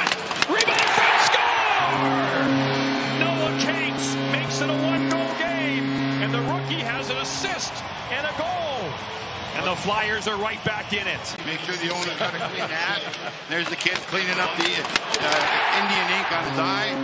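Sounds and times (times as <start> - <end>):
arena music: 0.0 - 10.2
crowd cheering loudly: 0.0 - 13.5, 14.3 - 17.0
goal horn blasts: 0.4 - 8.0, 15.9 - 17.0.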